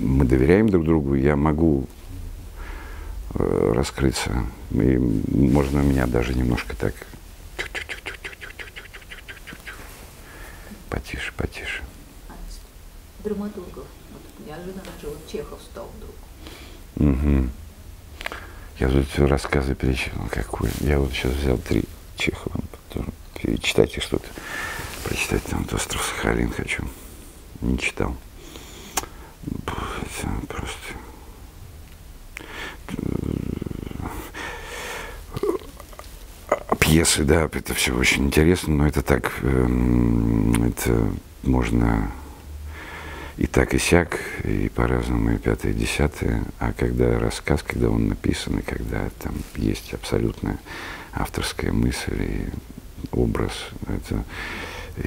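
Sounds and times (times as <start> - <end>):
man making breathy syllables: 7.5 - 11.9, 32.4 - 36.8
mouth click: 7.6 - 9.8, 29.0 - 29.2, 40.5 - 40.7
man humming in vocal fry: 7.6 - 9.9, 17.0 - 17.6, 32.9 - 34.3, 35.3 - 36.8.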